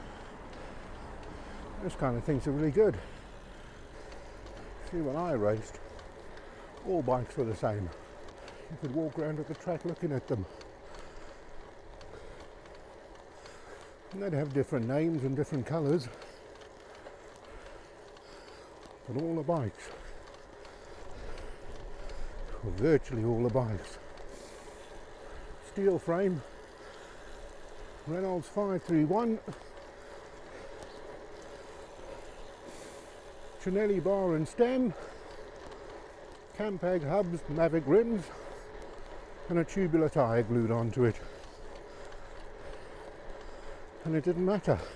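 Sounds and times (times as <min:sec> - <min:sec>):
bike road and wind noise: 0:00.0 - 0:44.9
faint clicks: 0:00.0 - 0:44.9.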